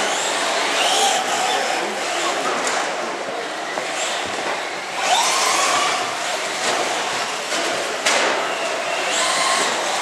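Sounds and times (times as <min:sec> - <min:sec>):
rc truck electric motor whining: 0:00.0 - 0:02.4, 0:03.5 - 0:10.0.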